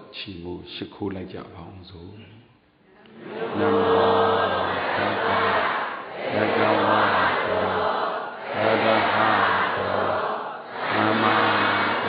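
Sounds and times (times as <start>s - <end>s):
group chanting in unison: 3.0s - 12.0s.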